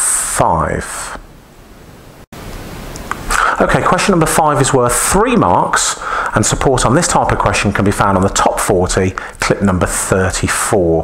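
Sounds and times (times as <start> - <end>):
room and microphone hiss: 0.0 - 11.0.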